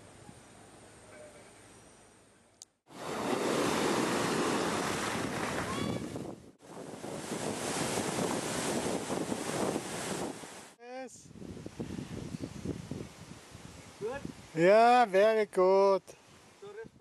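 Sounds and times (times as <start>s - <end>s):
sea surf crashing: 2.9s - 10.8s.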